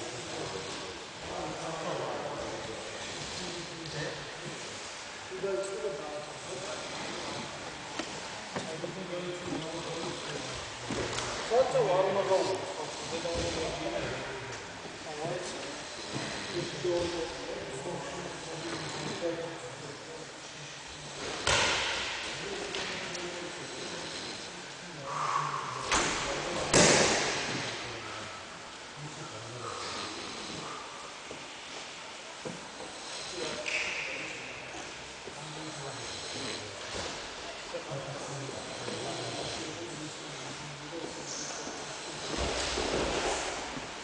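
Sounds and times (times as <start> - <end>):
low men's voices talking: 0.0 - 31.4, 32.2 - 43.9
large hall background noise: 0.0 - 44.0.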